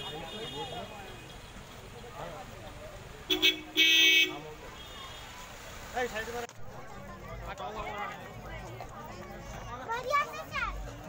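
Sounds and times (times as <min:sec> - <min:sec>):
vehicle horn honking: 0:00.0 - 0:01.6, 0:03.3 - 0:05.4
crowd voices: 0:00.0 - 0:11.0
street noise: 0:00.0 - 0:11.0.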